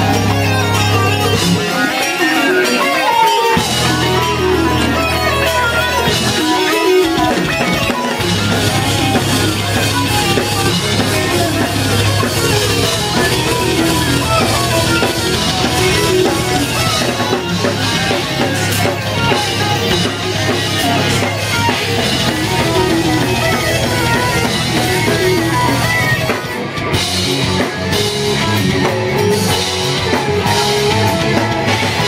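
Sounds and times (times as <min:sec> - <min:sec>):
drum kit: 0:00.0 - 0:32.0
electric guitars: 0:00.0 - 0:32.0.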